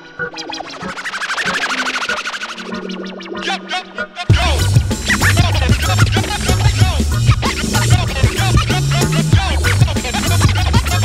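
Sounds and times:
hip hop beat with heavy bass: 0.0 - 11.0
turntable scratching: 0.0 - 11.0.

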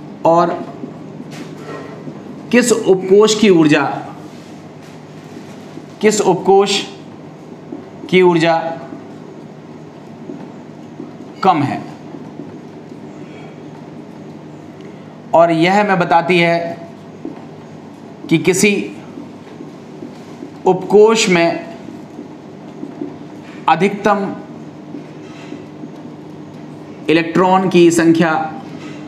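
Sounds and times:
room noise hum and hiss: 0.0 - 29.0.

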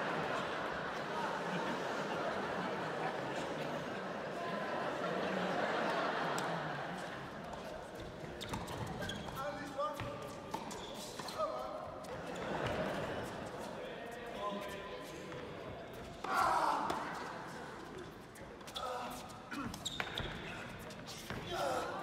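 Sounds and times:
spectators' voices: 0.0 - 22.0.

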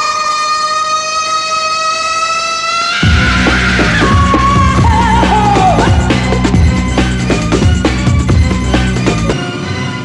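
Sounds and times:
long rising synth note: 2.7 - 10.0
dance beat: 3.0 - 9.4.

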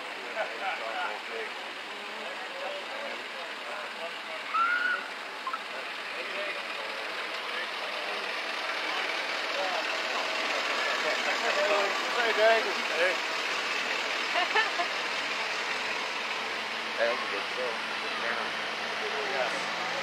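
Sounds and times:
onlookers chattering: 0.0 - 20.0
vehicles driving past: 0.0 - 20.0.

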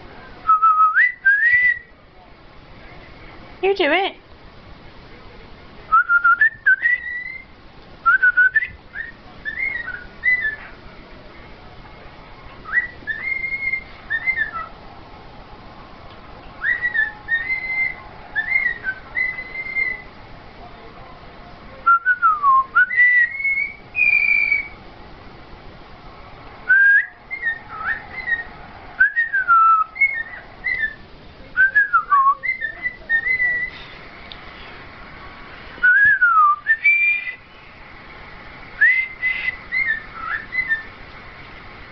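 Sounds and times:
cockatiel whistling: 0.5 - 1.9, 5.9 - 10.7, 12.6 - 14.7, 16.6 - 20.1, 21.9 - 24.8, 26.7 - 31.0, 31.6 - 33.9, 35.8 - 37.4, 38.8 - 40.9.

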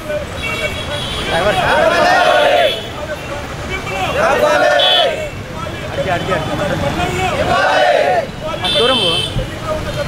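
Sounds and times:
crowd chanting in unison: 1.6 - 2.8, 4.2 - 5.2, 7.3 - 8.3.

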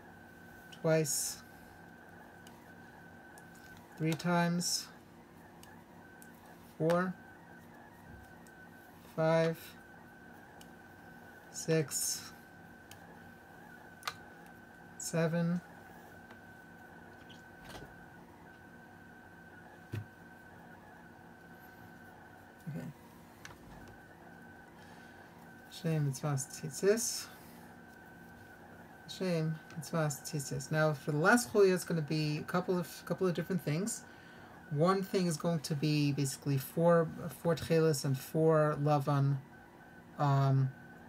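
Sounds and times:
faint high-pitched whine: 0.0 - 41.0.

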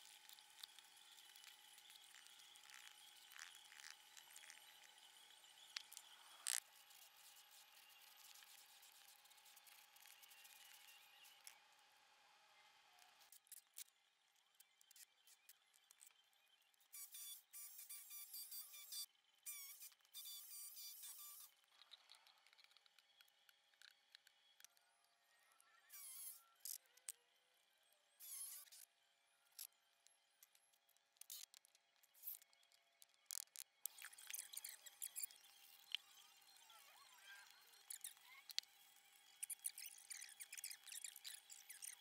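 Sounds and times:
small clicks: 17.0 - 25.2, 29.5 - 36.1.

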